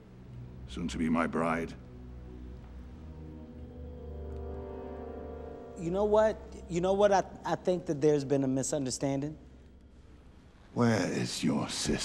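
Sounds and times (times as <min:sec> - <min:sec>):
sustained low orchestral chord: 0:00.0 - 0:08.6
man speaking: 0:00.7 - 0:01.8, 0:05.8 - 0:09.4, 0:10.8 - 0:12.0.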